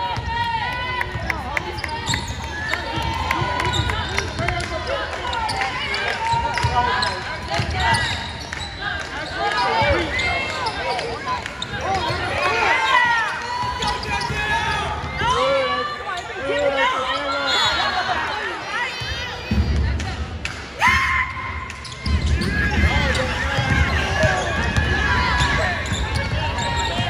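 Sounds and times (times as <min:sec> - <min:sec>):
sneakers squeaking: 0:01.2 - 0:20.0, 0:21.6 - 0:27.0.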